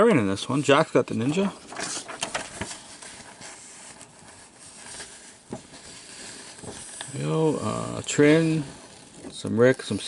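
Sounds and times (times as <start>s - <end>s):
low hiss: 0.0s - 10.0s
paper sheet rustling: 0.7s - 10.0s.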